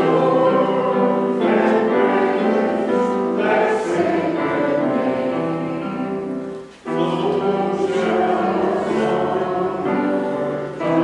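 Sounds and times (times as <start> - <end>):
voices singing held notes: 0.0 - 11.0.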